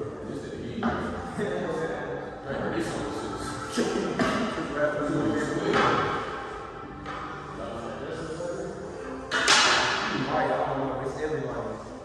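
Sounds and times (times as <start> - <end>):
background music: 0.0 - 12.0
voices: 0.0 - 12.0
billiard balls striking: 9.3 - 10.2.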